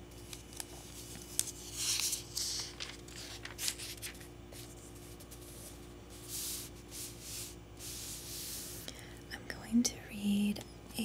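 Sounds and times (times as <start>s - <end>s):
paper rustle: 0.1s - 8.8s
paper clicks and ticks: 0.2s - 4.2s.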